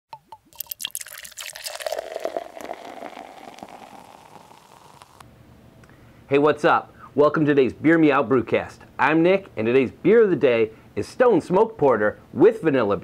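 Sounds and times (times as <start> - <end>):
beer pouring into a glass: 0.4 - 5.2.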